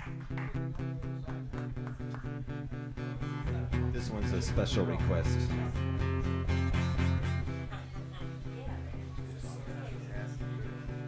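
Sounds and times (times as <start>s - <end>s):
guitar plucked notes: 0.0s - 11.0s.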